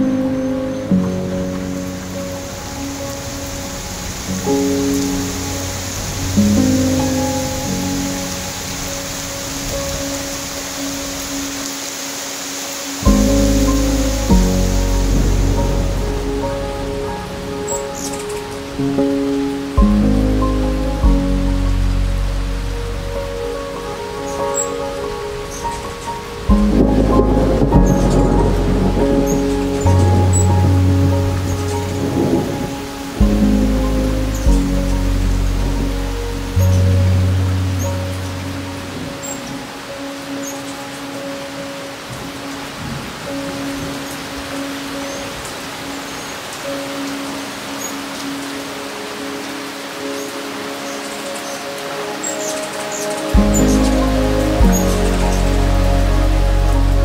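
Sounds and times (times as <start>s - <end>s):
soft sustained music: 0.0s - 57.0s
steady rain: 0.0s - 57.0s
thunder rolling: 13.0s - 39.6s.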